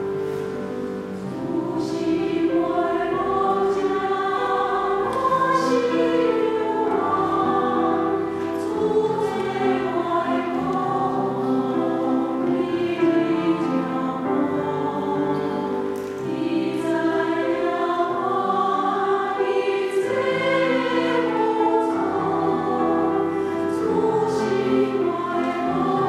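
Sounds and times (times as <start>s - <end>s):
choir singing a hymn: 0.0s - 26.0s
grand piano: 0.0s - 26.0s.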